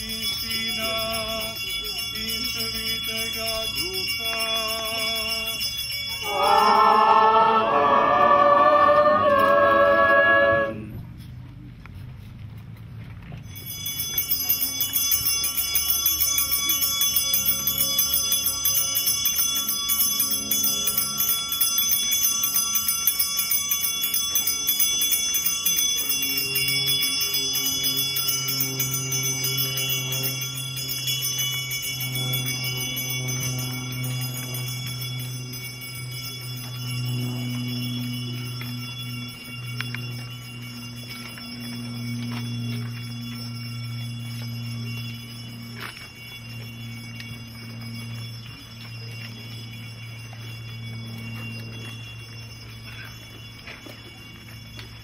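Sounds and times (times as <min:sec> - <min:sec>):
church bells pealing: 0:00.0 - 0:10.7, 0:13.5 - 0:55.0
deep steady hum: 0:02.6 - 0:11.2.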